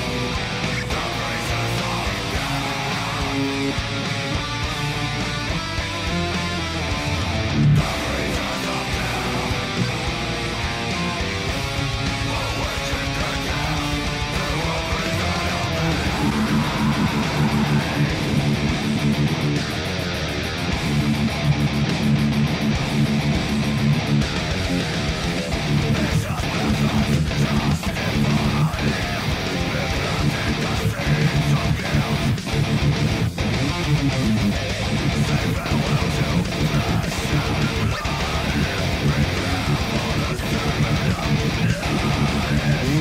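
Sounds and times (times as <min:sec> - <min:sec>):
distorted electric guitar playing metal: 0:00.0 - 0:43.0.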